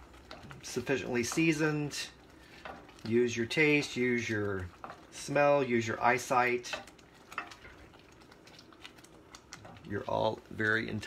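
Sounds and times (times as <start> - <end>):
sauce bubbling: 0.0 - 11.0
wooden spoon clicking in pan: 6.4 - 7.8.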